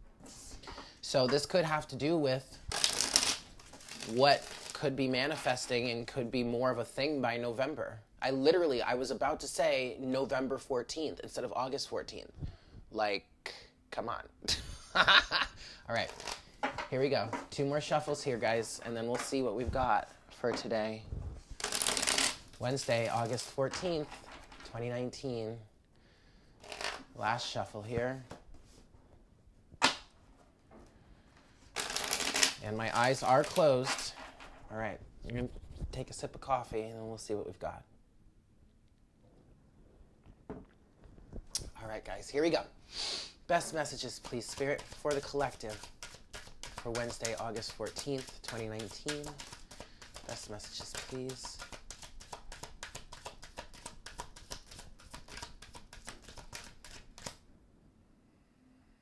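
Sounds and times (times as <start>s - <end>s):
cards being riffle-shuffled: 2.7s - 4.8s, 16.0s - 16.6s, 21.4s - 24.7s, 26.6s - 27.1s, 31.7s - 34.1s, 43.6s - 57.4s.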